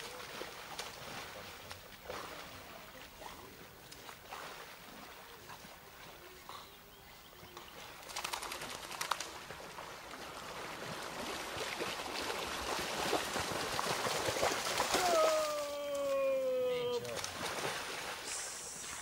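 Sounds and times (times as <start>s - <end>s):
water sloshing and splashing: 0.0s - 6.5s, 7.6s - 19.0s.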